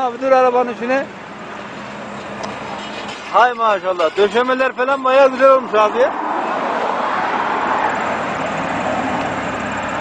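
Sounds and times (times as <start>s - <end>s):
outdoor street noise: 0.0s - 10.0s.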